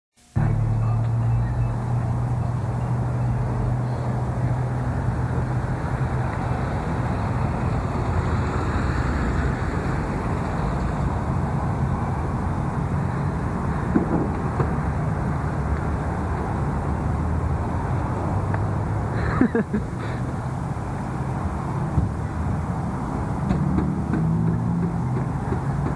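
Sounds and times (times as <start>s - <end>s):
parking lot background noise: 0.2s - 25.9s.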